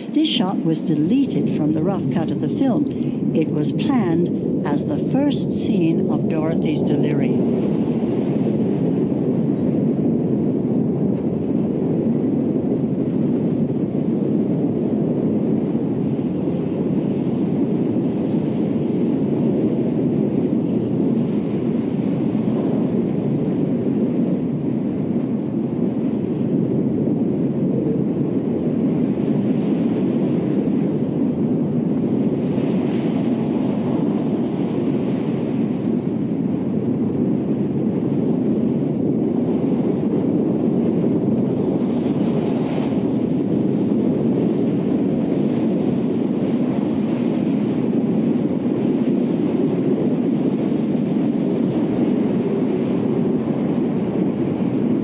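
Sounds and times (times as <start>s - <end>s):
rushing storm wind: 0.0s - 55.0s.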